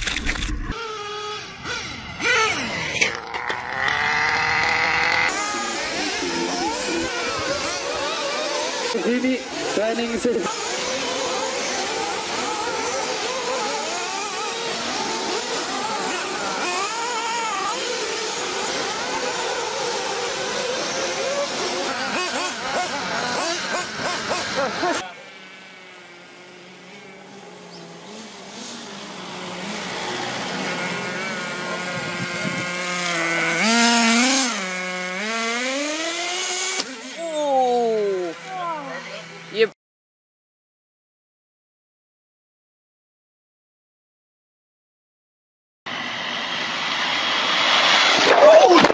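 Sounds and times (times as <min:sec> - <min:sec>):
rc car engines and track noise: 0:00.0 - 0:39.7, 0:45.9 - 0:48.9
rc car motor revving: 0:00.0 - 0:39.7.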